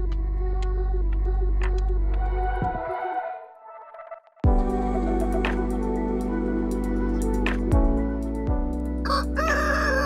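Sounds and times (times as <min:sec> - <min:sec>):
background music: 0:00.6 - 0:10.0
rooster crowing: 0:09.0 - 0:10.0.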